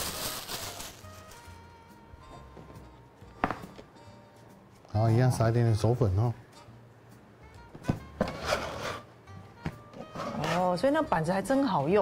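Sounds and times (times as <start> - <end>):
soft background music: 0.0 - 12.0
scraping and rubbing dough: 8.2 - 9.1, 10.0 - 10.8.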